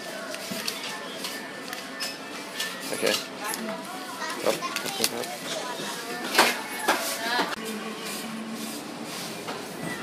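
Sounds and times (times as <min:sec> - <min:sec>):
indistinct talk of people: 0:00.0 - 0:08.8.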